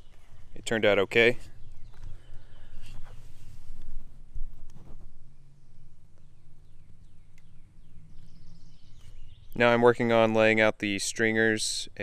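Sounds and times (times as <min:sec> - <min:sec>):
birds chirping: 0:00.0 - 0:03.6, 0:05.2 - 0:12.0
steady low hum: 0:00.0 - 0:10.9.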